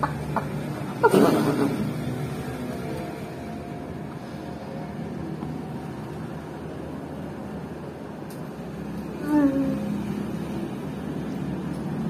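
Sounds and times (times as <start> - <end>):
woman laughing: 1.0 - 1.9.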